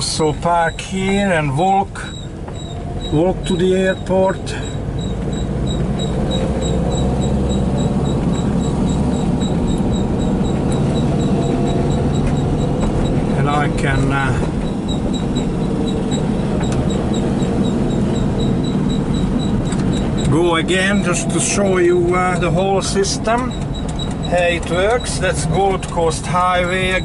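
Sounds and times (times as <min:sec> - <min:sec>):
road noise: 0:00.0 - 0:27.0
van engine running: 0:00.0 - 0:27.0.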